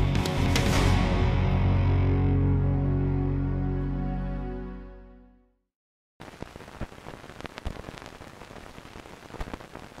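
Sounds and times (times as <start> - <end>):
old film crackle: 6.2 - 10.0.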